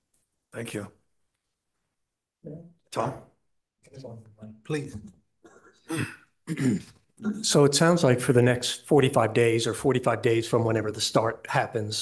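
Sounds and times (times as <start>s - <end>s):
man speaking: 2.4s - 5.2s, 6.6s - 12.0s
man clearing his throat: 5.4s - 7.0s.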